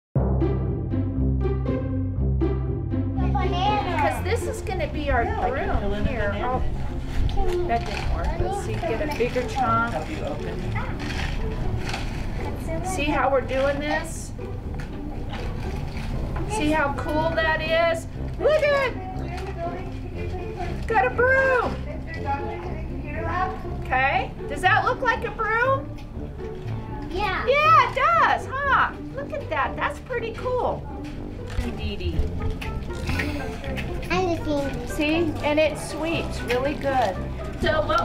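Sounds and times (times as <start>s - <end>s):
young children talking and calling out: 3.2s - 4.2s.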